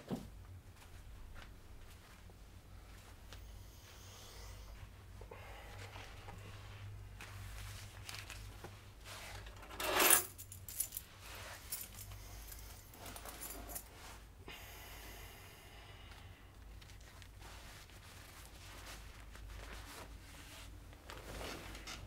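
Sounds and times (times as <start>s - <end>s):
low room hum: 0.0s - 22.0s
fabric rustling: 5.8s - 9.5s, 10.4s - 14.3s, 16.5s - 22.0s.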